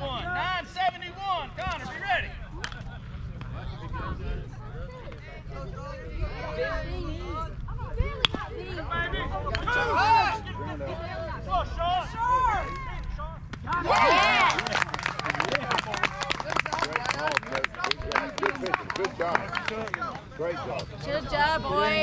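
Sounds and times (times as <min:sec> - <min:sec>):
spectators shouting and cheering: 0:09.5 - 0:10.6, 0:11.8 - 0:19.9
rapid clapping: 0:13.6 - 0:20.2.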